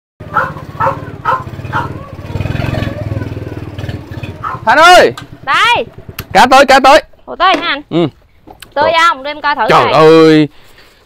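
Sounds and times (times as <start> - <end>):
dog barking: 0.2 - 2.4, 4.4 - 4.8, 9.7 - 10.2
small motorcycle engine running: 0.2 - 7.2.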